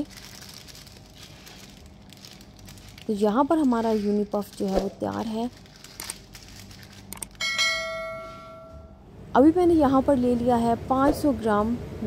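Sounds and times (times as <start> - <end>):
bell chime: 7.4 - 9.0.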